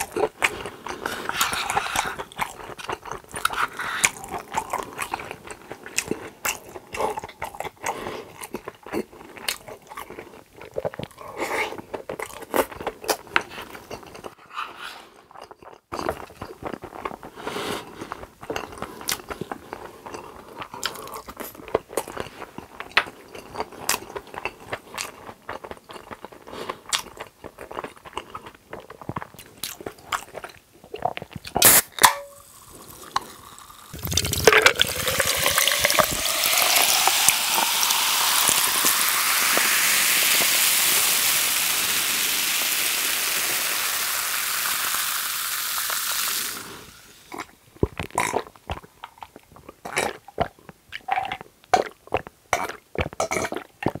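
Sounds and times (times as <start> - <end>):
chewing and mouth clicks: 0.0 - 14.4, 17.9 - 31.8, 47.3 - 54.0
soda can cracking open: 31.6 - 32.7, 33.6 - 40.8
cola fizzing poured over ice: 32.4 - 47.3.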